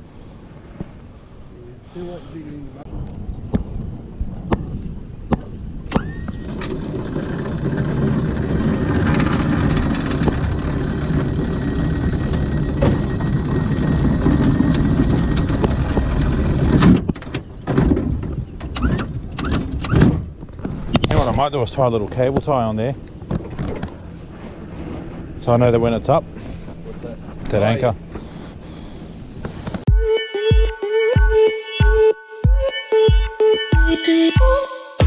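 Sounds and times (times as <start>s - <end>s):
sharp clicks and knocks: 5.3s - 21.2s
electric anchor winch running: 5.9s - 17.7s
anchor chain over bow roller: 5.9s - 29.8s.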